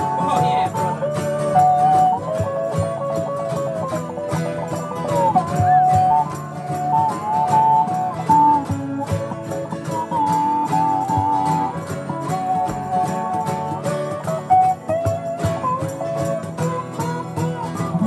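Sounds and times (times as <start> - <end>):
harmonica chords: 0.0 - 18.0
jingling percussion: 0.0 - 18.0
strummed acoustic guitar: 0.0 - 18.0.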